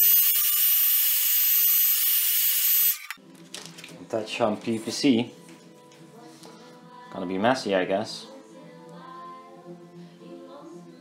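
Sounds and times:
heat gun blowing hot air: 0.0s - 3.2s.

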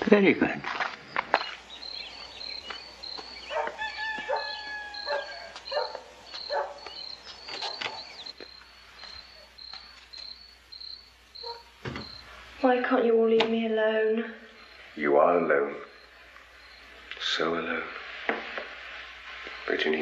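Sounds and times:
cricket chirping: 0.0s - 13.2s, 13.9s - 20.0s
high-pitched animal calls: 1.8s - 8.4s.

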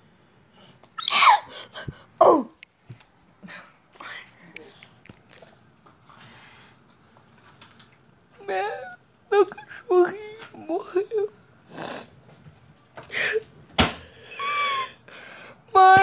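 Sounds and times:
boy yelping: 1.0s - 1.5s.

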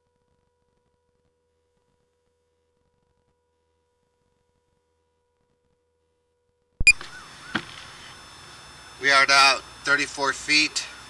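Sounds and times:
faint steady tone: 0.0s - 11.0s
short high-pitched beep: 6.8s - 7.2s
sharp electronic click: 6.8s - 7.7s.

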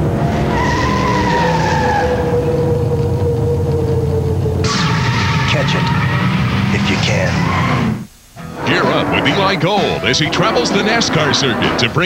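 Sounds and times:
racing engine running hard: 0.0s - 12.0s.

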